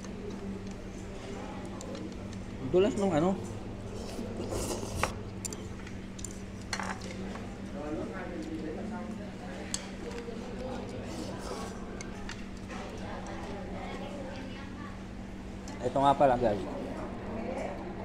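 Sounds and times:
steady low hum: 0.0 - 18.0
faint background voices: 7.1 - 15.2.

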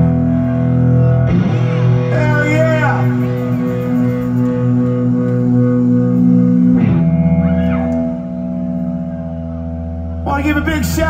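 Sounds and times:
electric guitars and bass chords: 0.0 - 11.0.

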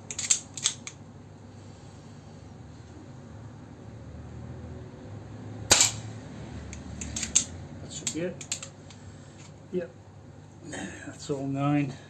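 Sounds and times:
pistol mechanical clicks: 0.1 - 1.0
air pistol shot crack: 5.7 - 6.1.

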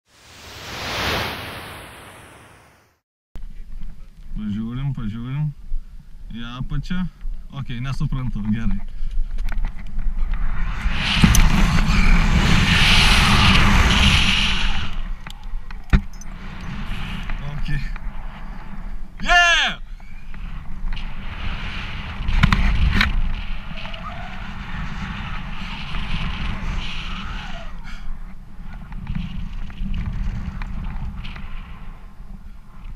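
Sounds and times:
whoosh with falling whistle: 0.2 - 2.9, 10.5 - 15.6
wind buffeting microphone: 8.2 - 32.9.

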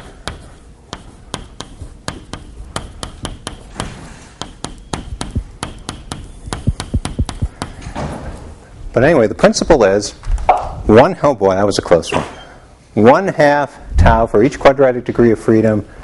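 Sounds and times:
chalk tapping on a blackboard: 0.0 - 7.8.

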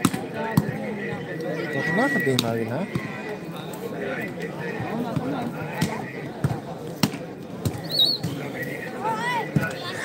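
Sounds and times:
volleyball bouncing on dirt: 0.0 - 0.9, 4.9 - 8.4
crowd chatter: 0.0 - 10.0.

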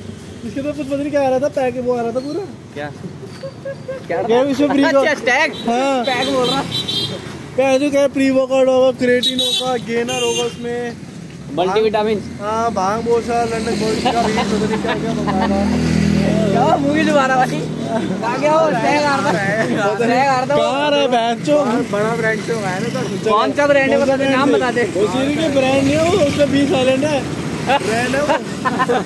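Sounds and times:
road traffic hum: 0.0 - 29.0
man talking: 0.4 - 3.1, 4.0 - 29.0
young men laughing: 2.9 - 6.5, 13.6 - 21.9, 23.7 - 29.0.

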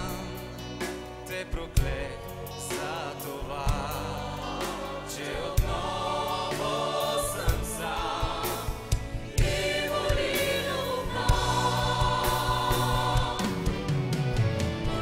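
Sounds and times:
choir and soloists singing: 0.0 - 15.0
live band playing: 0.0 - 15.0.

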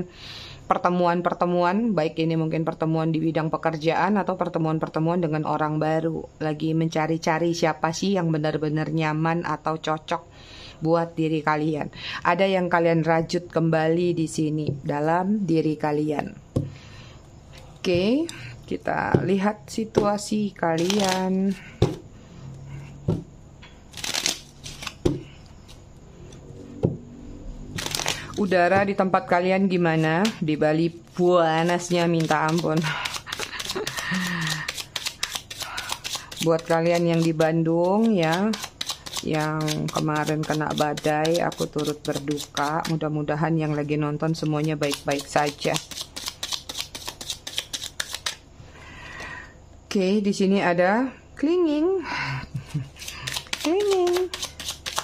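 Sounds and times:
cards being shuffled: 20.7 - 22.0, 23.9 - 25.8, 27.8 - 28.7, 31.4 - 43.0, 44.6 - 48.4, 52.7 - 55.0.

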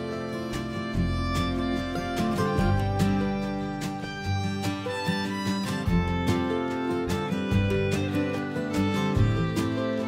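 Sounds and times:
country guitar and fiddle music: 0.0 - 10.0.

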